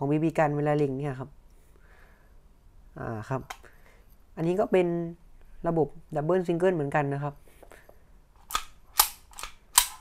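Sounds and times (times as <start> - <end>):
pistol hammer clicking: 8.5 - 10.0.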